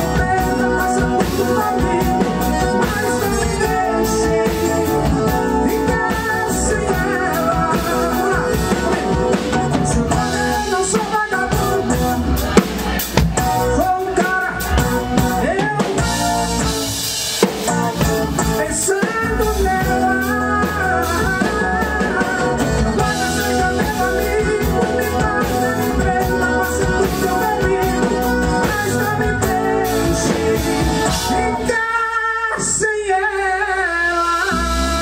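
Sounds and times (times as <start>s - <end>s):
accordion: 0.0s - 31.9s
electric bass: 0.0s - 32.0s, 32.6s - 35.0s
drum kit: 0.0s - 33.2s
man singing into a microphone: 0.0s - 35.0s.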